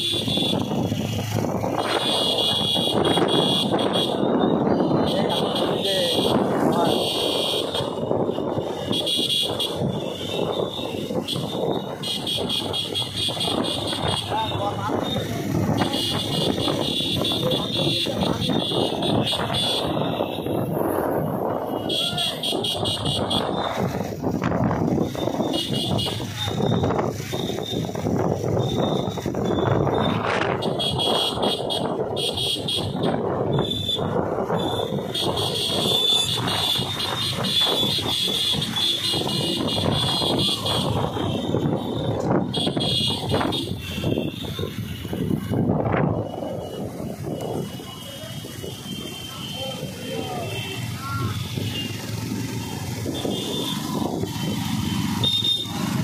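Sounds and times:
motorcycle engine: 0.0s - 56.0s
wind rushing over microphone: 0.0s - 56.0s.

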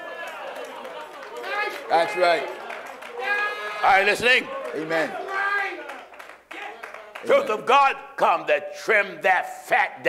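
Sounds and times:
person preaching: 6.5s - 10.0s.

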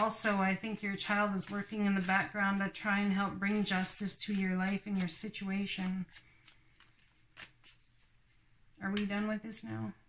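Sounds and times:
cards being shuffled: 0.0s - 9.7s.

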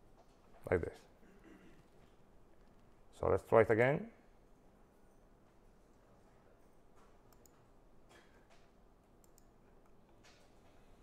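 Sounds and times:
computer mouse clicks: 7.3s - 7.7s, 9.2s - 10.6s.

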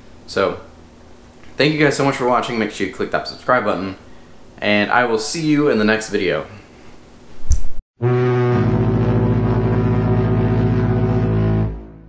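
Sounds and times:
deep ship's horn blast: 8.0s - 12.0s.

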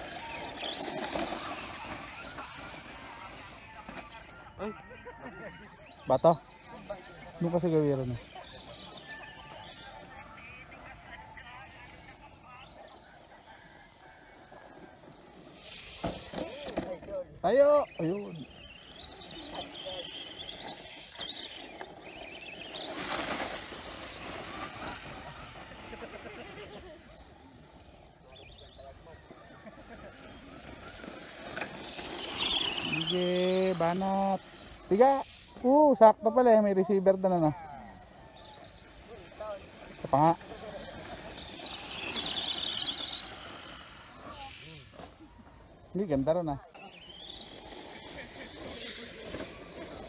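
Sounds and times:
broad rush of noise: 0.0s - 36.2s, 37.3s - 50.0s
electric motor whine: 0.0s - 50.0s.

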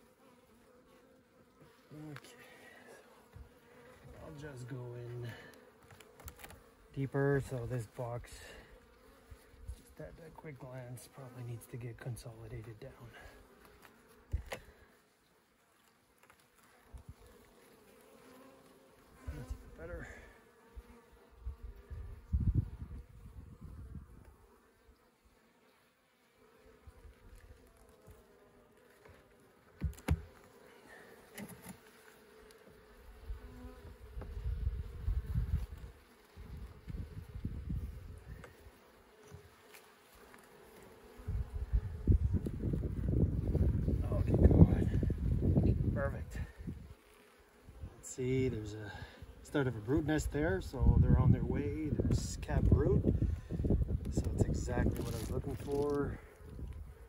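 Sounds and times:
bees humming: 16.2s - 57.0s.

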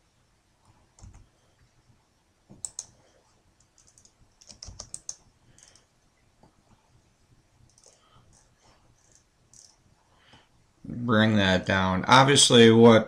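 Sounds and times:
computer keyboard clicking: 1.0s - 1.2s, 2.5s - 3.0s, 3.6s - 5.8s, 7.7s - 9.8s
mouse clicks: 2.5s - 3.0s, 3.6s - 5.9s.

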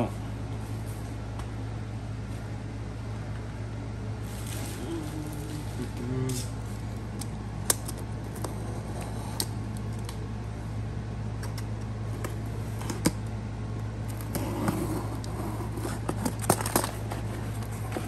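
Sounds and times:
steady low hum: 0.0s - 18.0s.

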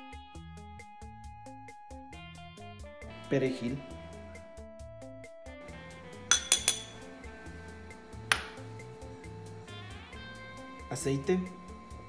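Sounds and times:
spoon clinking glass bowls: 6.3s - 7.1s.

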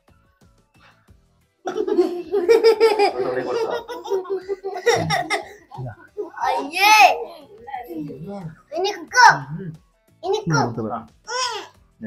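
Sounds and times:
people laughing: 1.7s - 7.5s.

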